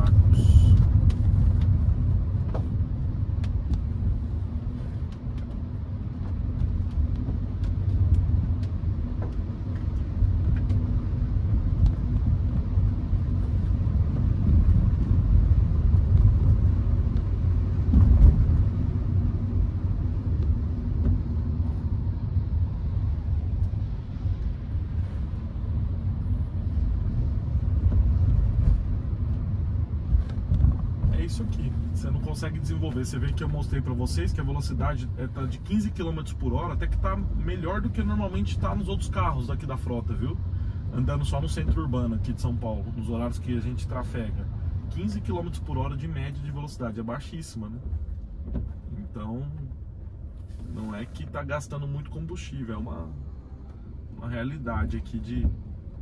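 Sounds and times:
engine and tyres rumbling: 0:00.0 - 0:56.0.

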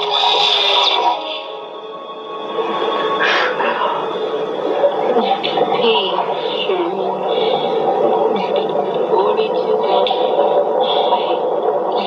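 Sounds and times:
children's voices: 0:05.1 - 0:10.4.

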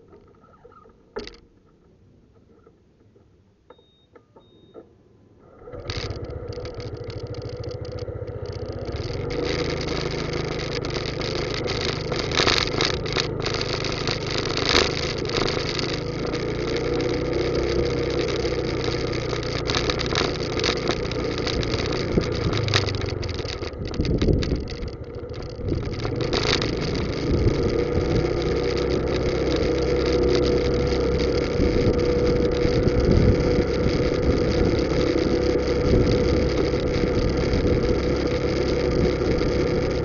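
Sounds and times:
small clicks: 0:00.0 - 0:04.9, 0:05.7 - 0:40.0
vehicle engine starting and running: 0:04.4 - 0:40.0
road noise: 0:05.2 - 0:40.0.

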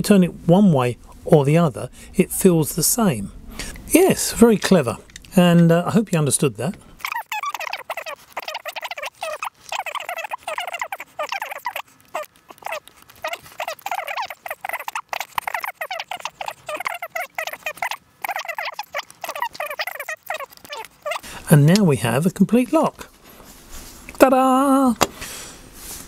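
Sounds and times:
rapid high-pitched chattering voice: 0:07.0 - 0:21.3.

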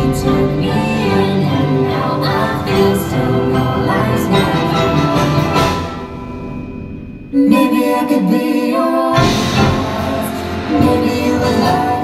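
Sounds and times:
marimbas playing: 0:00.0 - 0:07.9
drum kit and cymbals: 0:00.0 - 0:08.2, 0:09.2 - 0:12.0.

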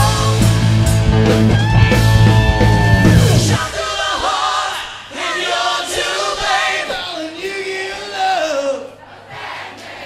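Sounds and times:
man singing through a pa: 0:06.4 - 0:09.0.

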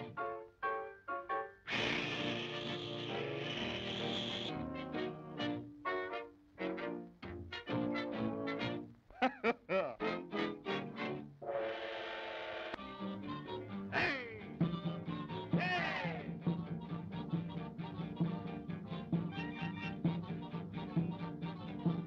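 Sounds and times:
swing orchestra music with brass: 0:01.2 - 0:09.0, 0:10.0 - 0:11.9, 0:12.8 - 0:22.0.

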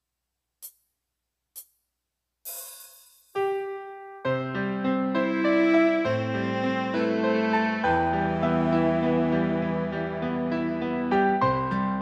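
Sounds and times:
hi-hat tick: 0:00.6 - 0:01.9.

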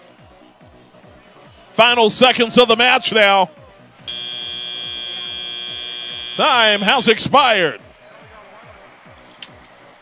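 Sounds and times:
faint arena music with bass beat: 0:00.0 - 0:10.0.

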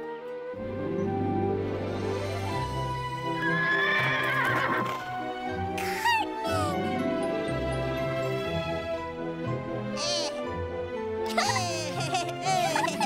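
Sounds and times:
soft background music: 0:00.0 - 0:13.0
horse whinnying: 0:03.4 - 0:05.1.

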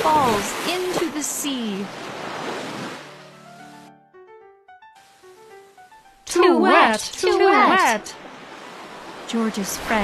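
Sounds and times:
sea waves and surf: 0:00.0 - 0:10.0
gentle music with held notes: 0:03.0 - 0:09.1.

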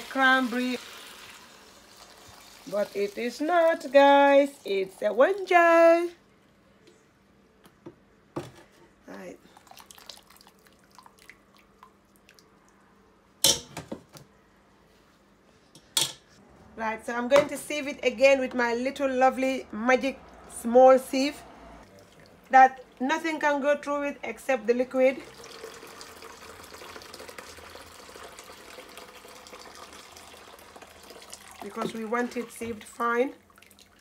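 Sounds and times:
liquid trickling into bowl: 0:09.6 - 0:12.8, 0:33.4 - 0:34.0.

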